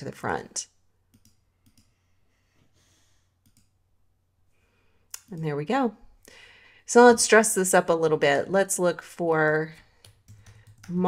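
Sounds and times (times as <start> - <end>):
computer mouse clicks: 1.1 - 2.0, 3.4 - 3.8.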